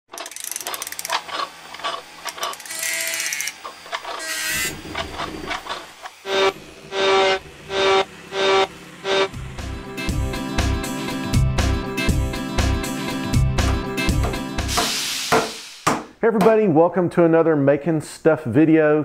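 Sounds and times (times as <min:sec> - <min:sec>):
rapid ratcheting clicks: 0:00.1 - 0:05.8
short mechanical whirs: 0:00.1 - 0:09.3.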